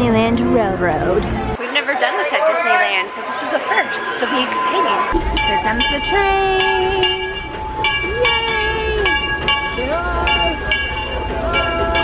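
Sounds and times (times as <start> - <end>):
voices: 0.0 - 12.0
steam locomotive bell ringing: 5.2 - 12.0.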